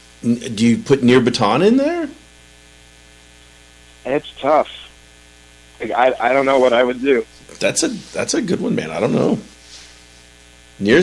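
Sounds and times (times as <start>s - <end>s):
electrical hum: 0.0s - 11.0s.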